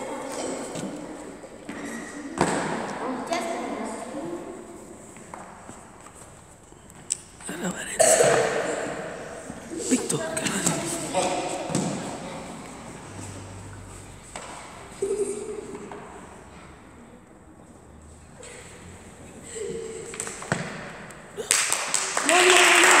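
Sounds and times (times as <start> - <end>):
people clapping: 21.3 - 23.0.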